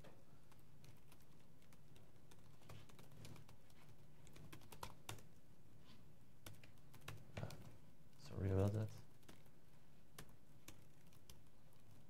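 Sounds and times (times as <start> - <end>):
laptop keyboard typing: 0.4 - 5.4, 6.4 - 7.8, 8.6 - 12.0.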